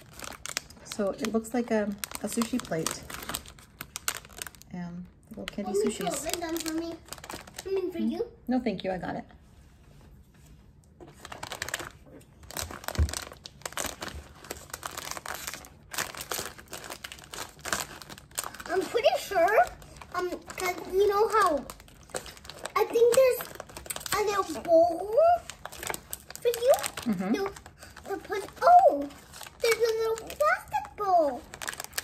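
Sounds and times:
plastic packaging crinkling: 0.0 - 8.2, 11.0 - 32.0
person speaking indistinctly: 4.7 - 8.4, 26.3 - 31.5
scissors cutting plastic: 21.3 - 32.0.

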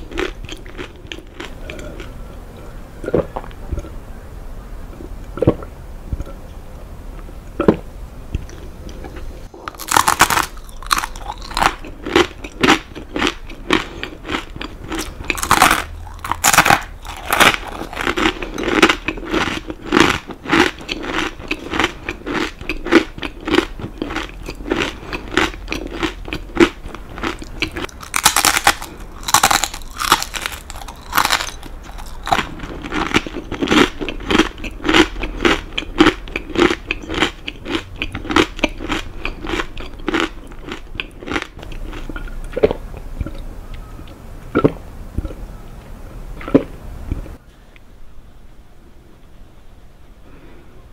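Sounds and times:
crunching and chewing crackers: 0.0 - 2.2, 8.4 - 43.5.

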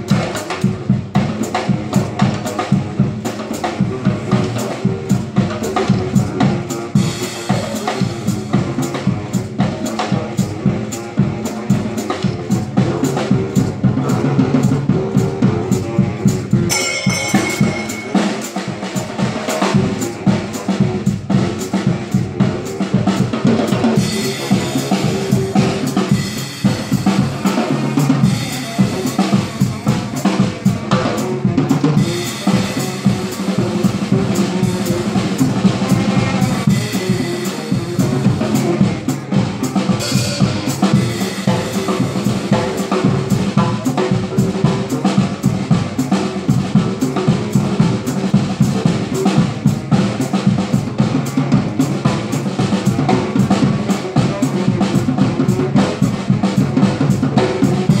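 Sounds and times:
drum kit fast groove: 0.0 - 58.0
saxophone melody: 10.2 - 23.2, 24.0 - 43.4.

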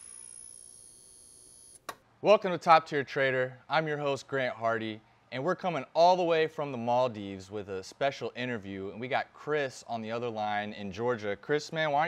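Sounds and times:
high steady tone: 0.0 - 1.8.

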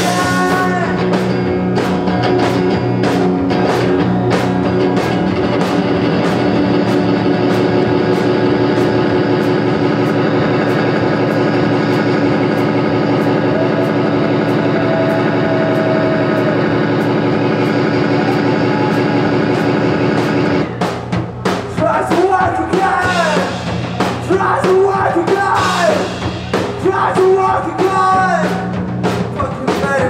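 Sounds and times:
drum kit playing: 0.0 - 30.0
electric guitar: 0.0 - 30.0.

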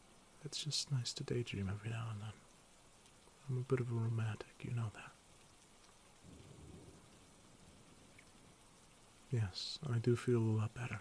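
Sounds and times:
rain: 0.0 - 11.0
soft low rumble: 6.2 - 9.0.

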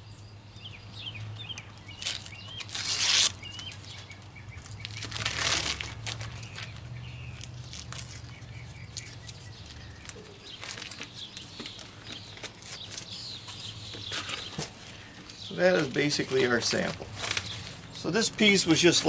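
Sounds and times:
birds chirping: 0.0 - 19.0
paper peeling and tearing: 1.9 - 3.9, 4.6 - 9.4, 15.8 - 17.8.

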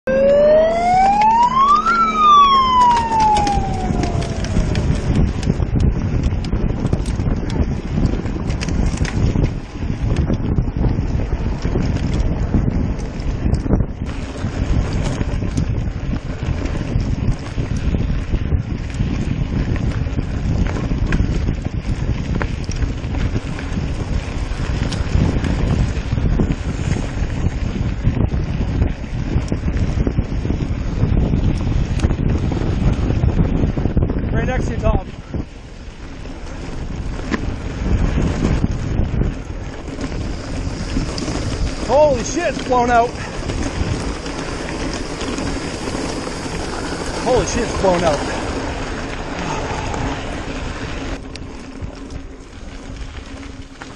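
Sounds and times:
siren wailing: 0.0 - 5.2
wind on microphone: 0.0 - 53.9
bike tyres rolling over gravel: 0.2 - 53.9.

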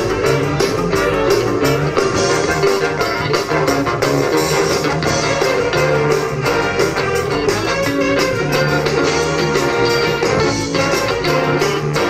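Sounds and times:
big band jazz: 0.0 - 12.0.

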